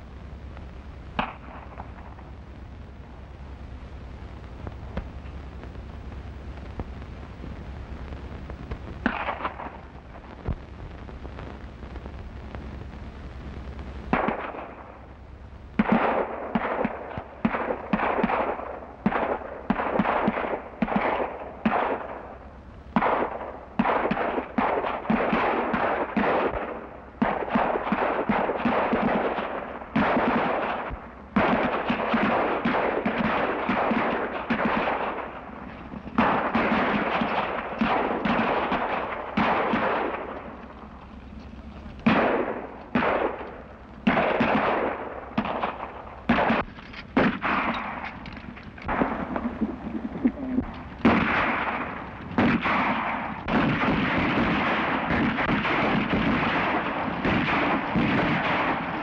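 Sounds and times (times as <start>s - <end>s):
low soundtrack hum: 0.0s - 19.6s, 32.4s - 53.6s
heavy gunfire: 9.0s - 10.6s, 14.1s - 15.0s, 15.8s - 59.0s.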